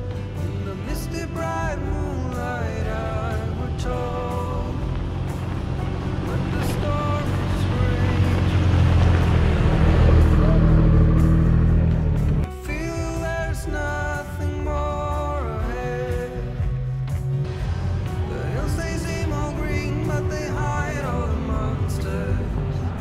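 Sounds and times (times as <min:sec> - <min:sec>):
pickup truck driving on dirt road: 0:00.0 - 0:23.0
person singing a song: 0:00.4 - 0:05.0, 0:06.2 - 0:09.0, 0:12.5 - 0:17.0, 0:17.6 - 0:23.0.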